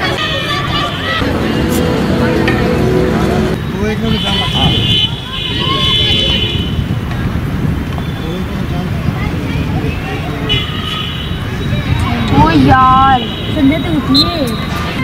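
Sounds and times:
distant voices: 0:00.0 - 0:07.3
steady background noise: 0:00.0 - 0:15.0
high steady tone: 0:01.2 - 0:04.0.

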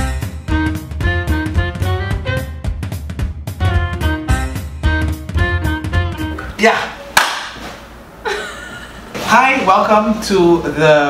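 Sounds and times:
hand clap: 0:07.1 - 0:07.8
laughter: 0:08.2 - 0:09.1.

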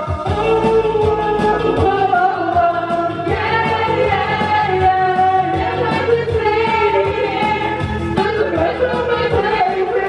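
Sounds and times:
people singing into microphones: 0:00.0 - 0:10.0
pop backing track with beat: 0:00.0 - 0:10.0.

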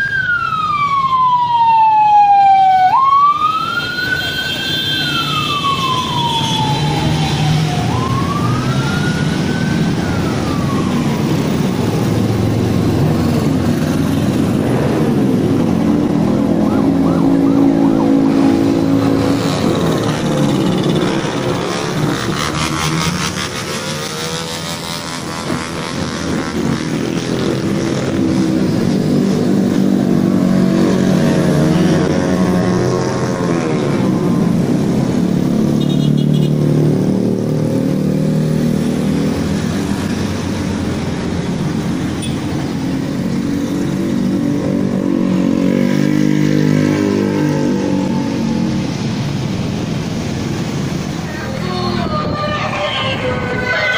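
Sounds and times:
scooters and motorcycles passing: 0:03.7 - 0:53.9.

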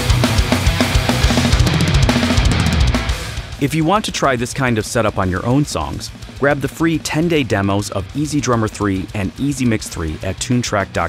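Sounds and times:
heavy metal music: 0:00.0 - 0:11.0
rapid drum hits: 0:00.0 - 0:11.0.

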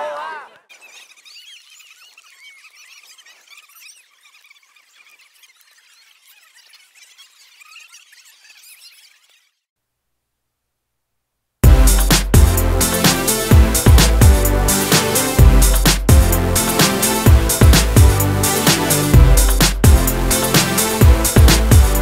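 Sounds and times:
high-pitched chirps and squeals: 0:00.6 - 0:09.7.

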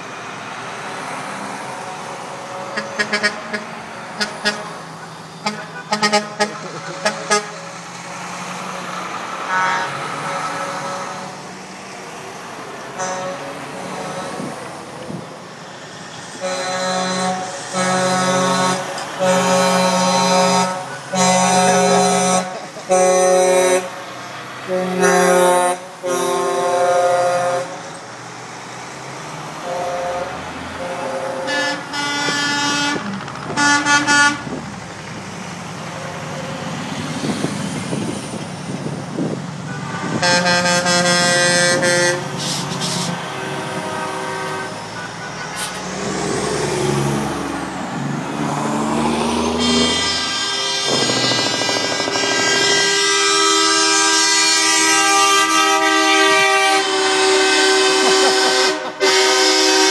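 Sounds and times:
diesel truck engines: 0:00.0 - 0:59.9
truck air horn blasts: 0:02.0 - 0:07.9, 0:09.4 - 0:11.4, 0:12.9 - 0:14.6, 0:16.4 - 0:27.9, 0:29.6 - 0:34.6, 0:39.6 - 0:47.6, 0:48.9 - 0:59.9.

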